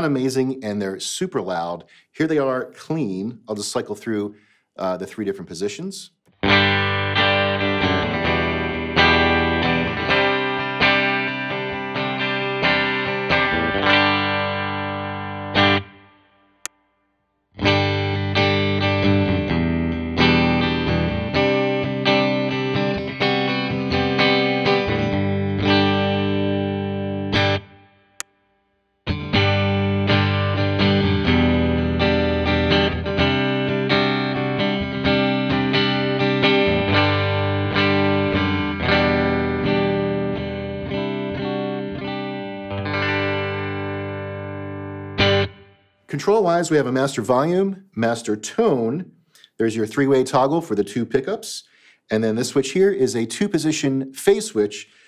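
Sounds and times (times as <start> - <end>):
clean electric guitar chords and notes: 6.3 - 16.0, 17.6 - 27.9, 29.1 - 46.9.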